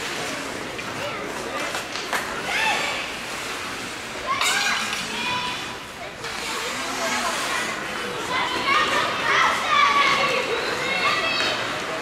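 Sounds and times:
children shouting: 2.4s - 3.1s, 4.2s - 5.7s, 8.2s - 11.8s.

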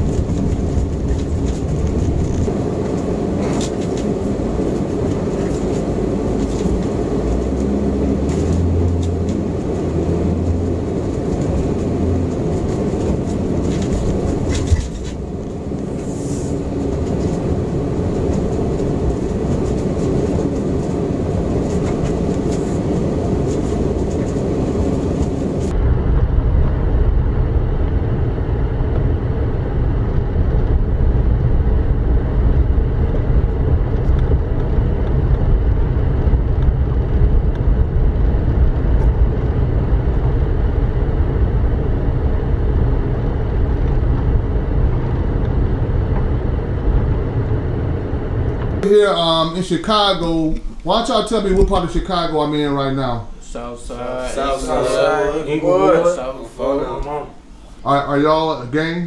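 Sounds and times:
car engine and tyres rumbling: 0.0s - 54.8s, 56.1s - 58.8s.

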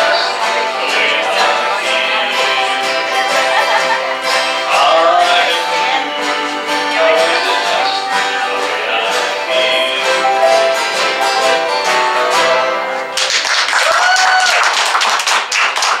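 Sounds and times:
acoustic string band playing: 0.0s - 13.2s
audience applause: 13.2s - 16.0s.

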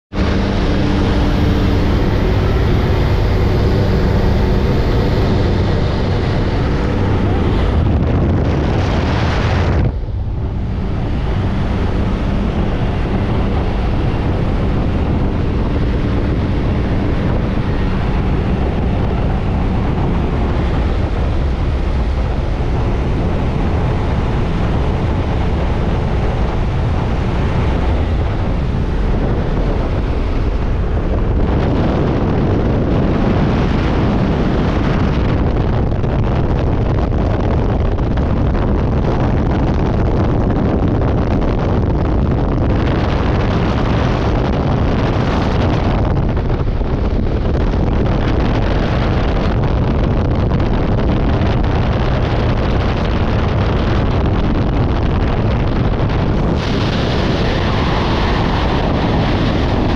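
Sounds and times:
airplane engine drone: 0.1s - 59.9s
wind buffeting microphone: 0.1s - 59.9s
wind rushing: 0.1s - 59.9s.

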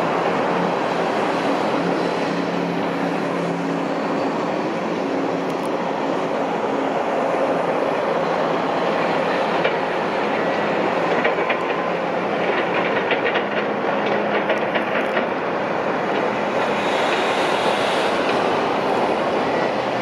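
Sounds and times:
heavy machinery noise: 0.0s - 20.0s.

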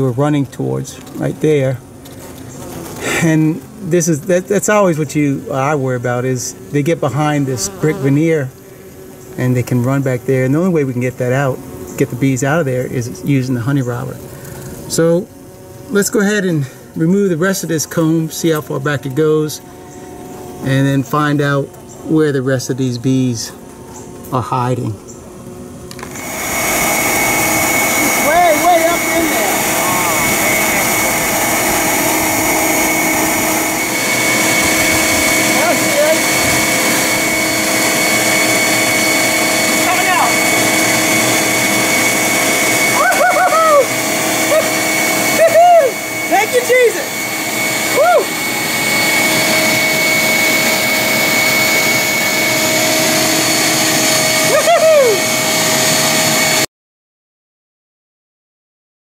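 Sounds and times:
vacuum motor whine: 0.0s - 56.7s
voice-like calls: 7.0s - 8.6s, 27.8s - 36.6s, 42.8s - 47.2s, 54.4s - 55.4s.

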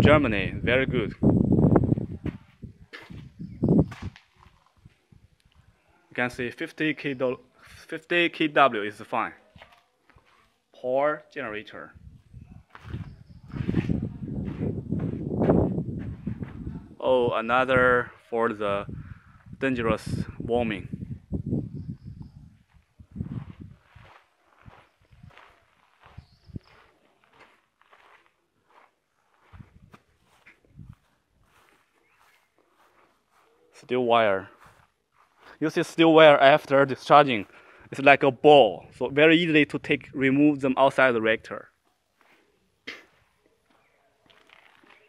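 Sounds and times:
footsteps on paved ground: 1.9s - 5.1s, 9.4s - 10.6s, 12.7s - 16.8s, 22.6s - 37.8s, 42.0s - 45.0s
soft scuffs: 2.2s - 5.1s, 9.4s - 10.6s, 12.7s - 16.8s, 22.6s - 33.9s, 34.5s - 35.8s, 42.1s - 45.0s.

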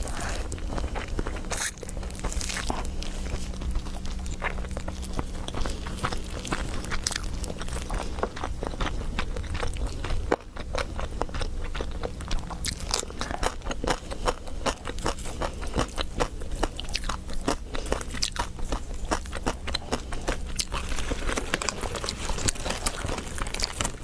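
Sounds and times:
chewing crunches and mouth clicks: 0.0s - 24.0s.

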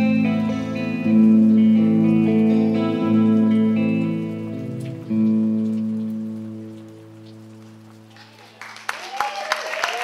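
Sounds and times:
guitar chord ringing: 0.0s - 7.9s.

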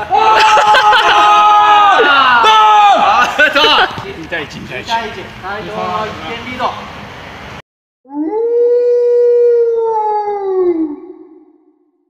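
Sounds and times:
long howl sound effect: 8.1s - 12.0s.

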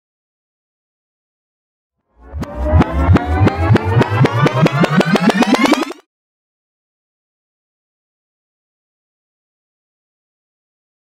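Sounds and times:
rising tone: 2.1s - 6.0s
mechanism spinning up with clicks: 2.4s - 6.0s.

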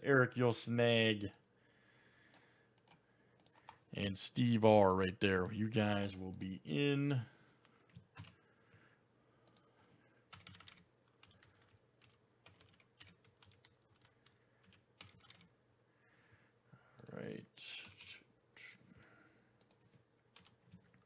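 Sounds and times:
typing on computer keyboard: 7.9s - 8.4s, 9.4s - 15.5s, 19.6s - 21.0s.

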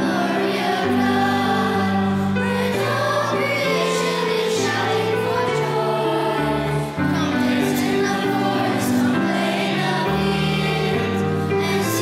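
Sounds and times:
choir singing a hymn: 0.0s - 12.0s
sustained instrumental accompaniment: 0.0s - 12.0s.

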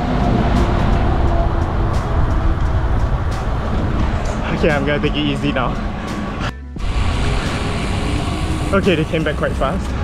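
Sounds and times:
wind buffeting microphone: 0.0s - 8.8s
faint road and traffic noise: 0.0s - 10.0s.

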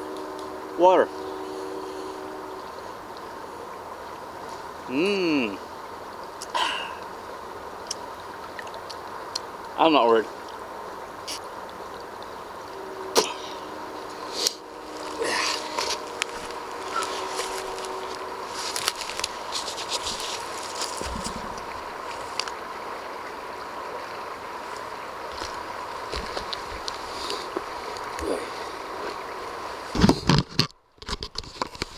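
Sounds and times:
steady background hiss: 0.0s - 30.4s
faint constant tone: 0.0s - 31.9s
slurping water through straw: 13.2s - 22.6s.

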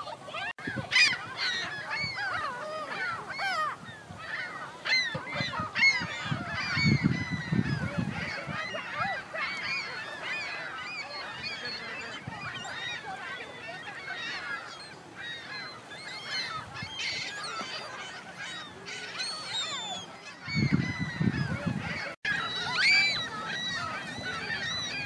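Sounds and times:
gulls calling: 0.0s - 25.0s.

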